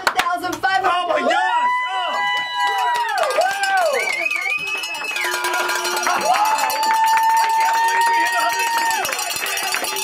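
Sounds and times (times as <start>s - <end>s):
group clapping and cheering: 0.0s - 10.0s
high whoop: 1.3s - 9.2s.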